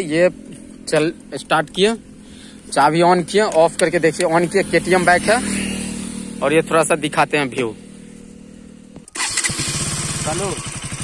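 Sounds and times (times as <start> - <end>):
motorcycle engine starting and idling: 0.0 - 11.0.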